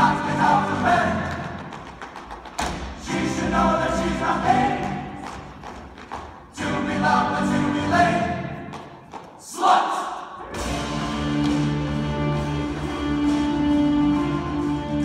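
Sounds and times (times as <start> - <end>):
stage chorus singing with accompaniment: 0.0 - 15.0.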